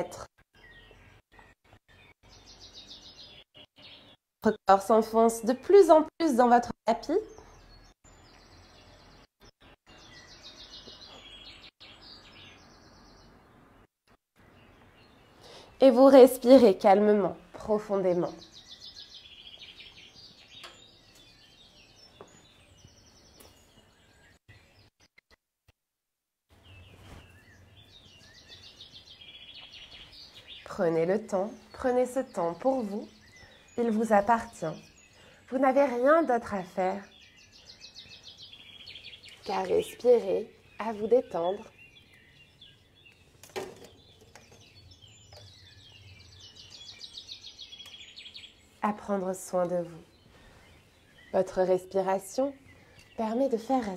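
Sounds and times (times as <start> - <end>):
faint birds chirping: 0.0 - 25.4, 26.5 - 53.9
bird trilling high chirps: 37.0 - 48.8.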